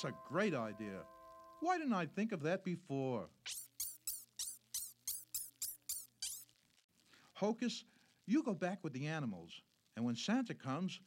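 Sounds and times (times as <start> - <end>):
faint low musical drone: 0.0 - 1.7
cartoon squeak chirps: 3.4 - 6.6.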